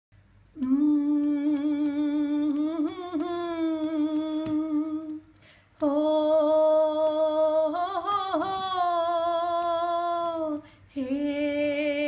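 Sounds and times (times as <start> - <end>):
woman singing wordlessly: 0.5 - 12.0
breath: 5.3 - 5.8, 10.6 - 11.0.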